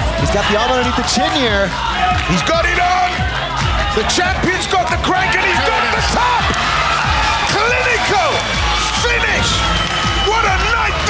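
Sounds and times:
background music: 0.0s - 11.0s
excited shouting voices: 0.0s - 11.0s.

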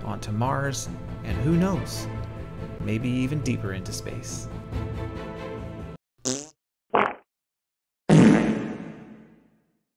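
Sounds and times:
background music: 0.0s - 6.0s.

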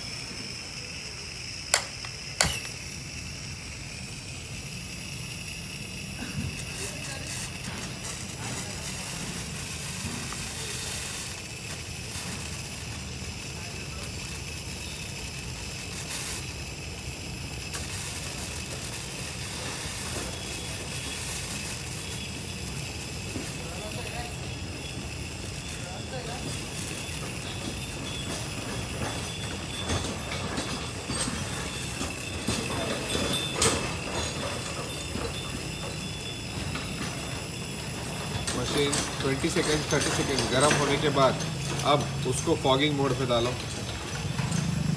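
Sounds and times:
gas burner rumble and hiss: 0.0s - 44.9s.

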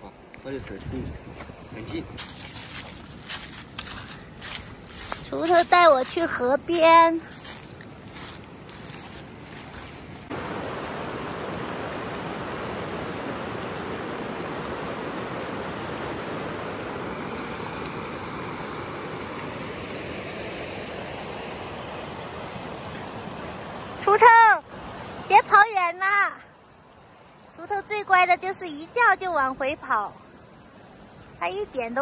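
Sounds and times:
river rushing over rocks: 8.2s - 25.6s.

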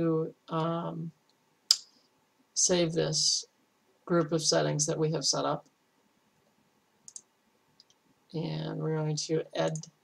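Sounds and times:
computer mouse clicks: 7.0s - 8.0s, 9.7s - 10.0s.

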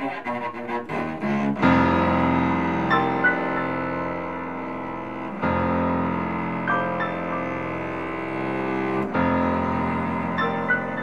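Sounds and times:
cello bowed notes: 0.0s - 11.0s
piano chords: 0.6s - 11.0s.

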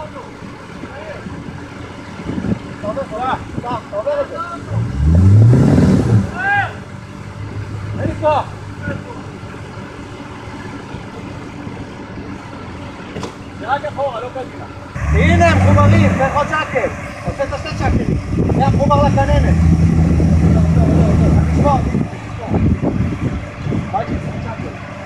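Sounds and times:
car engine revving and idling: 0.0s - 25.0s.

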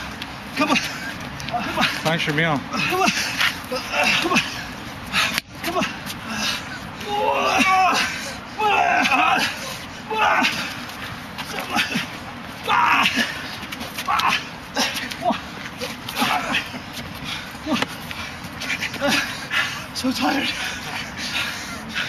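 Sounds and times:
men breathing hard and grunting: 0.0s - 22.0s.

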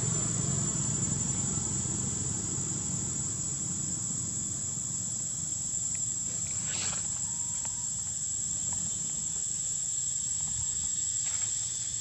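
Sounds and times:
insects droning: 0.0s - 12.0s.

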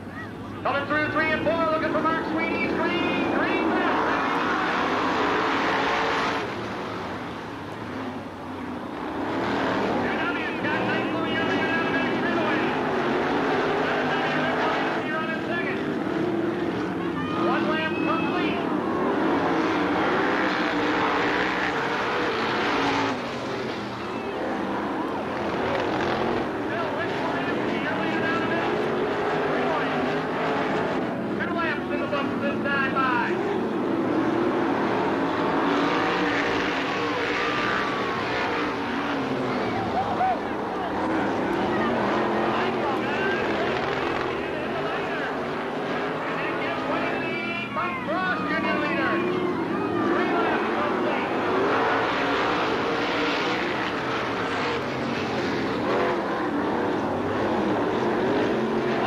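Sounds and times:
race car engines: 0.0s - 59.0s.

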